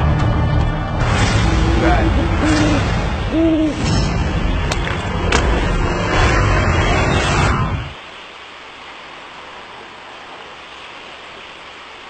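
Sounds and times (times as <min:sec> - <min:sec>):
steady low rumble: 0:00.0 - 0:08.0.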